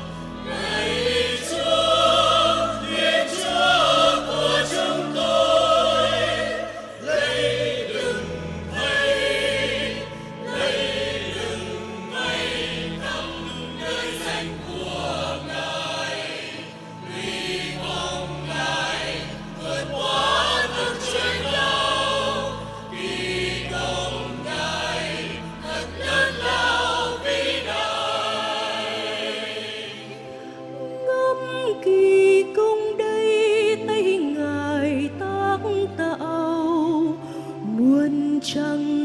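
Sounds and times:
choir singing: 0.0s - 39.0s.

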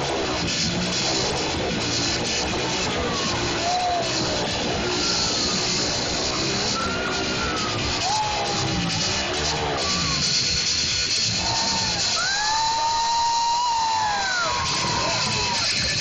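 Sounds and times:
loud music: 0.0s - 16.0s
motorcycle engines revving: 0.0s - 16.0s.

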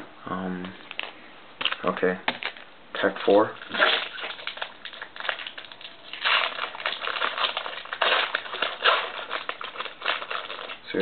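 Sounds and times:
cards rustling: 3.6s - 11.0s
foil wrapper crinkling: 3.6s - 11.0s.

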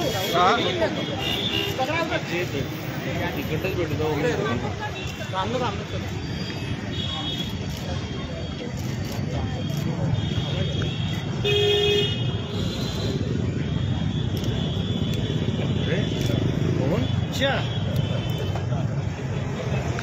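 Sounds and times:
murmur of crowd: 0.0s - 20.0s
road traffic hum: 0.0s - 20.0s
vehicle horn: 10.2s - 13.3s.

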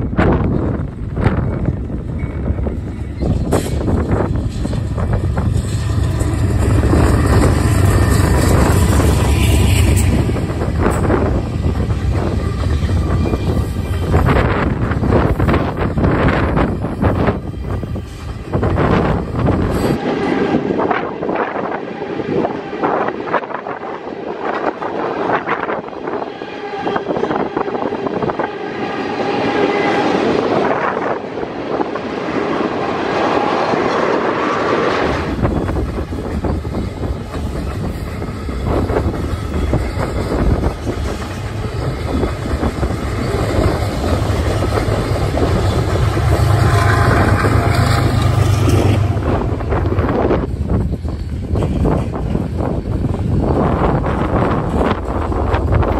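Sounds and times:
wind buffeting microphone: 0.0s - 55.9s
freight train wheels clicking: 0.3s - 20.0s, 32.3s - 55.9s.

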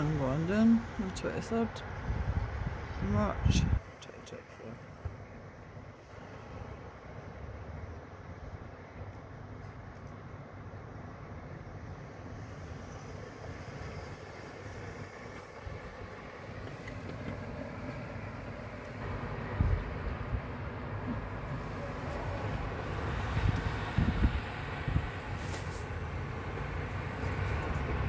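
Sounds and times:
steady outdoor rumble: 0.0s - 28.0s.

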